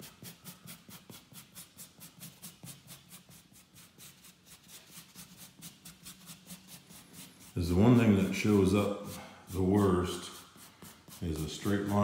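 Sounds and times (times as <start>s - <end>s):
rubbing strokes on joint compound: 0.0s - 12.0s.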